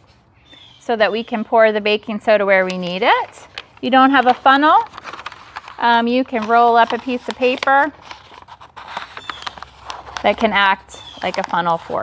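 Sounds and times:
paper rustling and crackling: 2.6 - 12.0.

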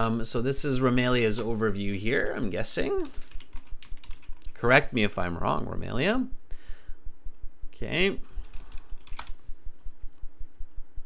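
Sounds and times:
typing on computer keyboard: 3.0 - 4.6, 8.7 - 9.4.

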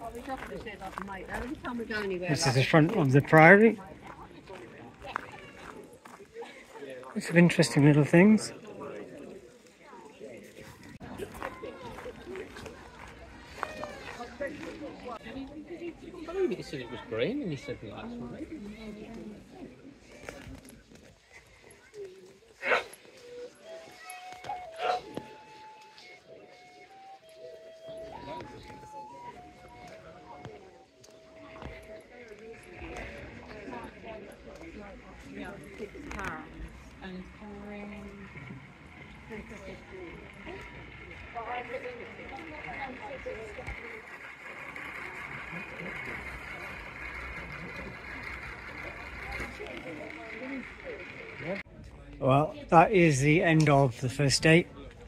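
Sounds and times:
chatter of people: 0.0 - 55.0
people talking indistinctly: 0.0 - 55.0.

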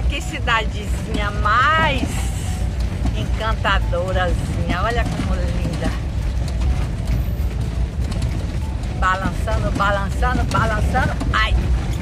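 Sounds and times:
tyres rumbling on cobblestones: 0.0 - 12.0
cabin clicks and rattles: 1.0 - 12.0.

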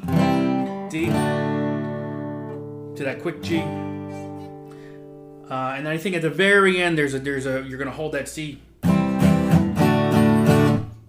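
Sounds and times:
acoustic guitar chord ringing: 0.0 - 6.9, 8.8 - 11.0.

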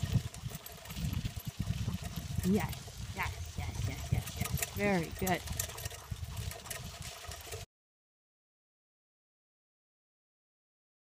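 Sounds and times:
cart rolling over dirt track: 0.0 - 7.7.

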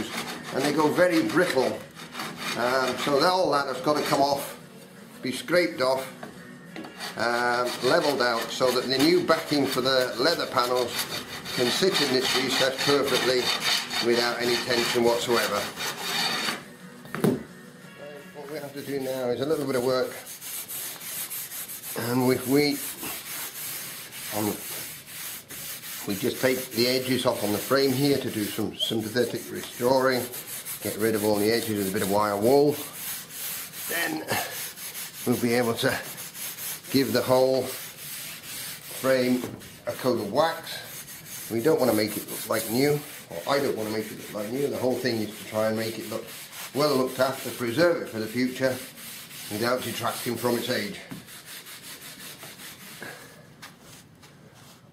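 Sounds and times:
wire wool rubbing on wood: 0.0 - 4.5, 7.0 - 16.6, 18.6 - 53.1.

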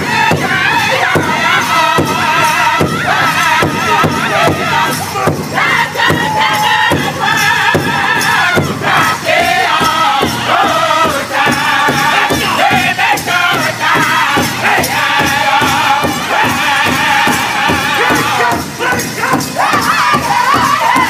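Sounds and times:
group singing in unison: 0.0 - 21.0
large hide drum beat: 0.0 - 21.0.

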